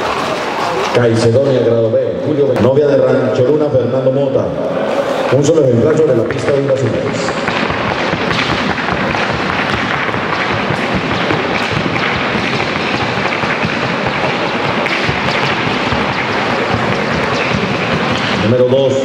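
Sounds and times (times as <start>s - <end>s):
hooves striking a wooden board: 5.9s - 18.7s.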